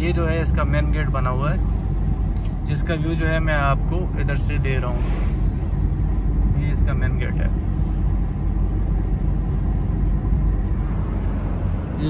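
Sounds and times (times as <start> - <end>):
car interior rumble: 0.0 - 12.0.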